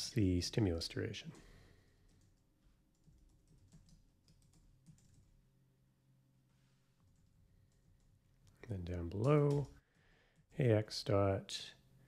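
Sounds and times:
faint keyboard typing: 1.3s - 5.4s, 7.0s - 10.8s.

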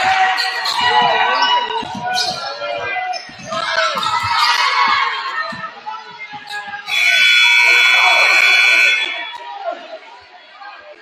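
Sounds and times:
scoreboard horn blast: 6.9s - 9.2s.

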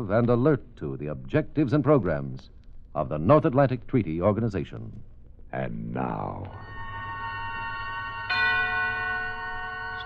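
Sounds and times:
bell-like chord: 6.5s - 10.0s
fuller ringing chord: 6.6s - 10.0s.

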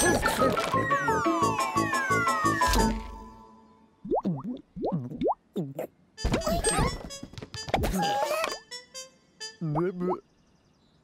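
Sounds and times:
music: 0.0s - 3.9s, 6.2s - 9.8s
cartoon bubble bloops: 4.0s - 6.9s.

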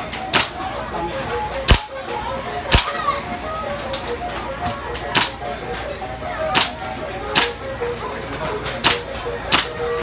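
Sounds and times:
air rifle pops: 0.3s - 0.6s, 1.7s - 1.9s, 5.2s - 5.4s.

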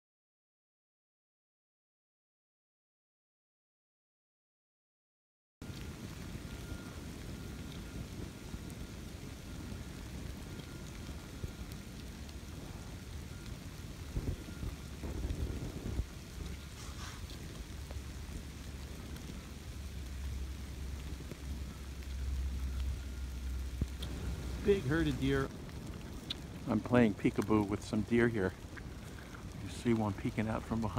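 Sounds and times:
rain falling on woodland: 5.6s - 30.9s.

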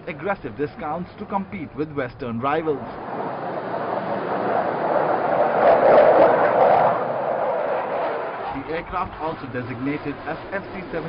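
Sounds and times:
fighter jet flying past: 2.9s - 11.0s.

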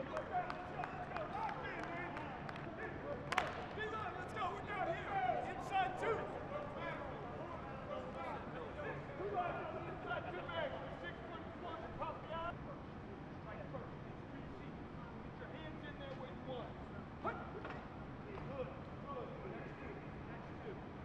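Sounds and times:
voices talking and calling out: 0.0s - 21.0s.

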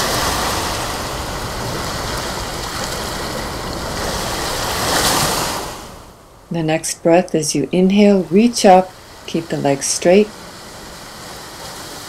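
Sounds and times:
ocean surf breaking on beach: 0.0s - 12.0s.

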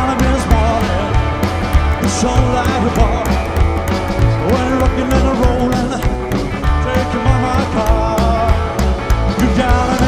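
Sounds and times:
drum kit beat with cymbals: 0.0s - 10.0s
live rock band playing: 0.0s - 10.0s.

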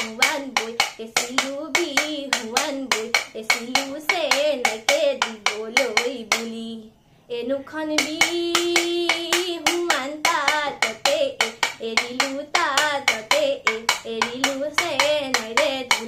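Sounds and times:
woman singing: 0.0s - 16.0s.

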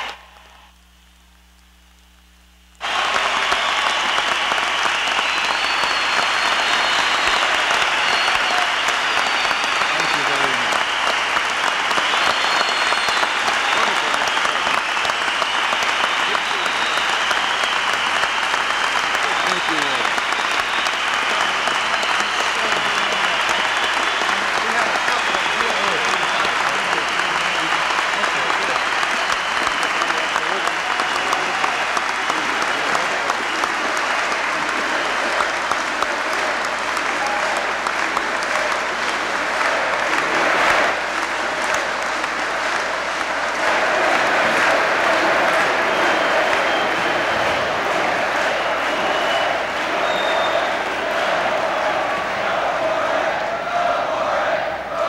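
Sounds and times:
large audience applauding: 0.0s - 0.8s, 2.8s - 55.0s.

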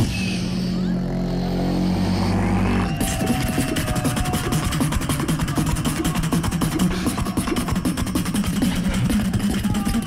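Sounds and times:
sustained low bass tone: 0.0s - 9.8s
beatboxing clicks and snaps: 3.0s - 10.0s.

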